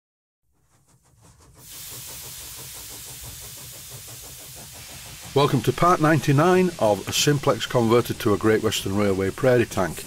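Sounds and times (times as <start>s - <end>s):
soft regular pulsing: 0.6s - 9.9s
steam hissing: 0.6s - 10.0s.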